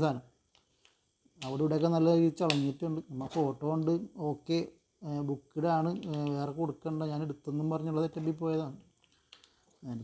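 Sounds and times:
man talking: 0.0 - 0.3, 1.4 - 8.8, 9.8 - 10.0.

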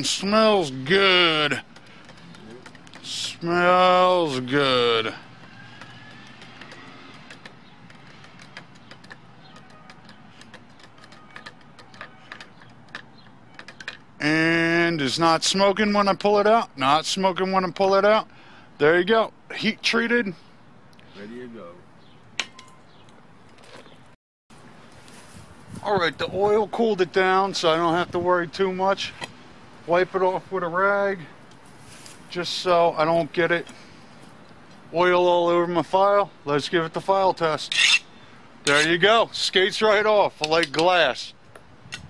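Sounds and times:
faint outdoor background noise: 0.0 - 42.0
oil crackling and clicking: 1.5 - 3.3, 5.3 - 14.2
handling ticks: 1.6 - 3.4, 5.2 - 14.2.

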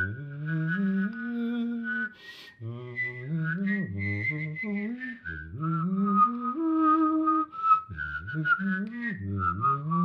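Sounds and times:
person whistling while voicing: 0.0 - 10.0.

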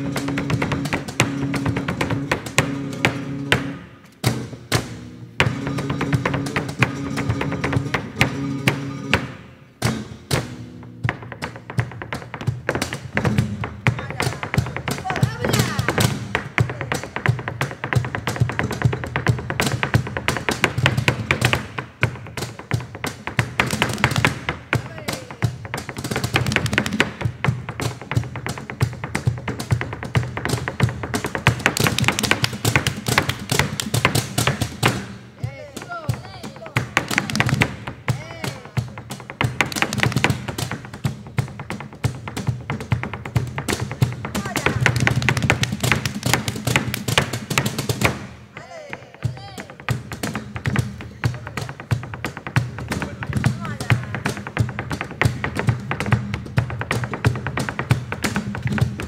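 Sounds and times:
flamenco guitar: 0.0 - 59.0.

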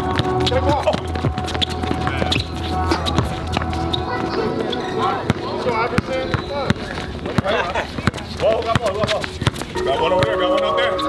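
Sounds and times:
basketball bouncing on hard court: 0.0 - 4.3, 5.2 - 10.4
players calling out: 0.0 - 11.0.

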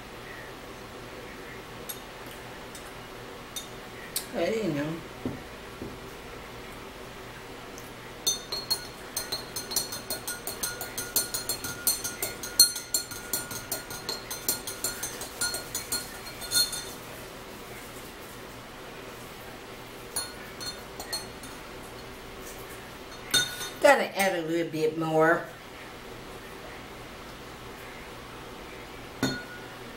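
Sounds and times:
spoon clinking in glass: 8.2 - 17.0, 20.2 - 21.6, 23.1 - 23.8, 29.2 - 29.7.

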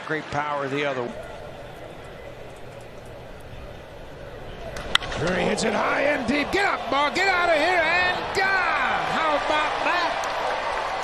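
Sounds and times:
ballpark crowd noise: 0.0 - 11.0
baseball bat hitting ball: 1.3 - 5.7.

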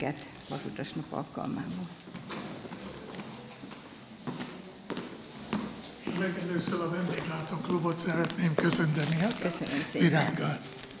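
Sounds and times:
footsteps on a hard floor: 1.7 - 11.0.

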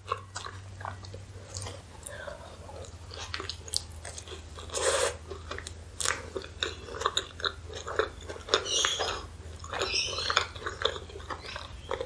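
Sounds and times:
wet chewing: 0.0 - 12.0.

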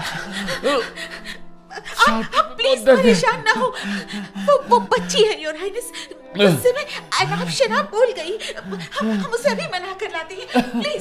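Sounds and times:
person gasping and whimpering: 0.0 - 9.7
background music: 0.0 - 11.0.

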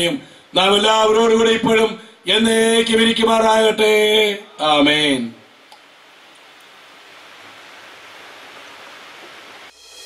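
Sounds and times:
steady recording hiss: 0.0 - 10.0.

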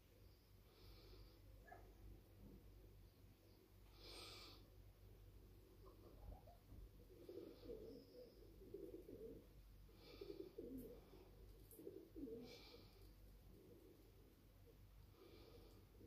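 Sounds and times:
bird cooing: 6.2 - 14.2.

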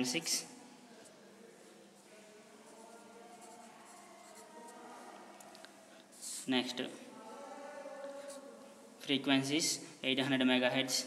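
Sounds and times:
pen scratching on paper: 3.3 - 4.8.

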